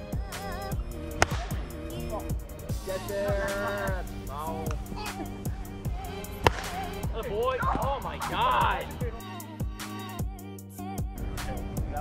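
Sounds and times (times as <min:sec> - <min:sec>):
pop music with steady beat: 0:00.0 - 0:12.0
plastic bat hitting ball: 0:01.1 - 0:01.8, 0:06.3 - 0:07.1.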